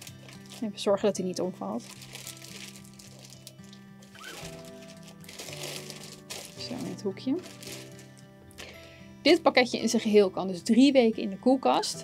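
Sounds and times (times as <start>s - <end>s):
plastic bag crinkling: 0.0s - 0.9s, 1.7s - 8.2s
soft background music: 0.0s - 12.0s.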